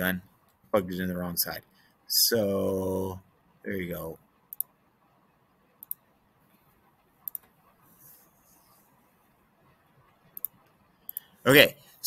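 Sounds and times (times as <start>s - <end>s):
computer mouse clicking: 4.5s - 4.7s, 5.8s - 6.0s, 7.2s - 7.6s, 10.3s - 11.4s.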